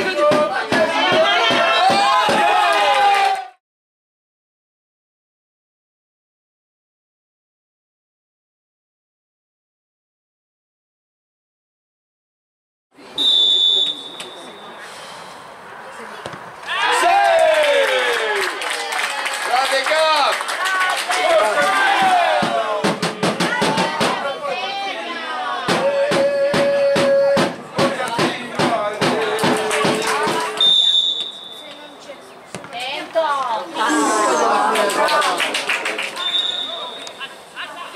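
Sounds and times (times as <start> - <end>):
people shouting: 0.3 - 3.6, 21.2 - 27.4, 33.8 - 35.2
referee's whistle: 13.2 - 14.8, 30.6 - 31.8, 36.2 - 37.4
ball being struck: 16.2 - 16.5.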